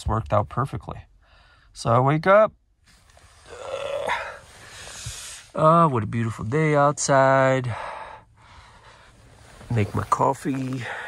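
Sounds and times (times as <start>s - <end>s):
man yawning: 3.4s - 4.4s.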